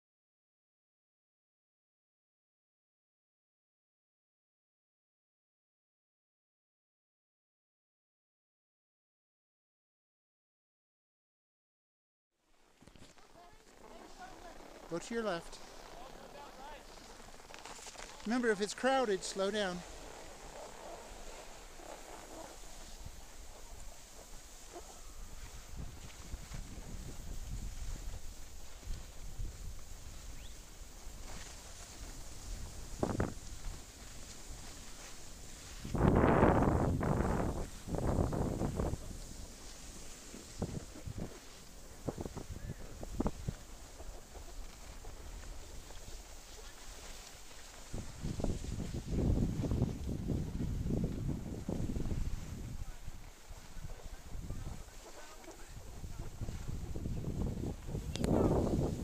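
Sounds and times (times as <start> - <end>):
skis sliding on snow: 12.6 - 59.0
wind noise on microphone: 19.9 - 59.0.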